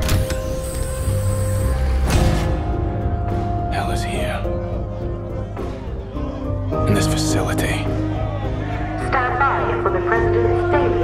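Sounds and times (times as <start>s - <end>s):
droning music tones: 0.0s - 11.0s.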